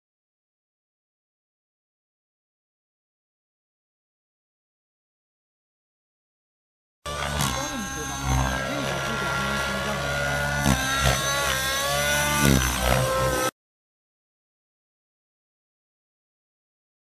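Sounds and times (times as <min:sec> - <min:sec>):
helicopter drivetrain whine: 0:07.1 - 0:13.5
rotor hum: 0:07.1 - 0:13.5.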